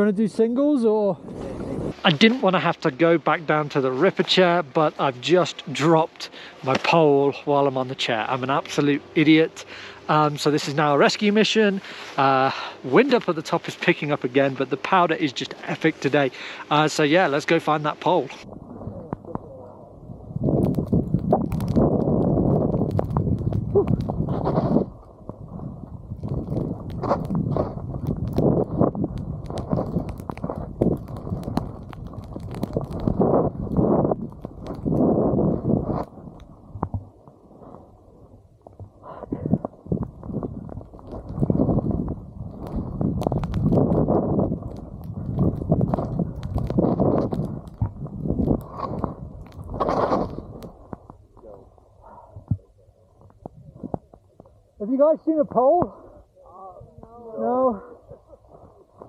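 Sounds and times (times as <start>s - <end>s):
wind buffeting microphone: 1.2s - 2.7s, 16.2s - 54.7s.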